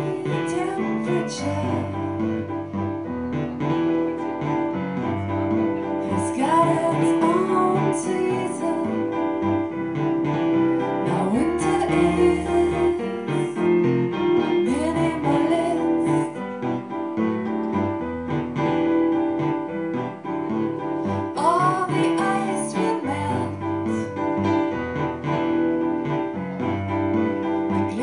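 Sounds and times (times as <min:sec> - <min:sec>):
woman singing: 0:00.0 - 0:02.4, 0:06.1 - 0:09.4, 0:11.0 - 0:13.7, 0:14.6 - 0:16.6, 0:21.3 - 0:24.2, 0:27.8 - 0:28.0
electric keyboard chords: 0:00.0 - 0:28.0.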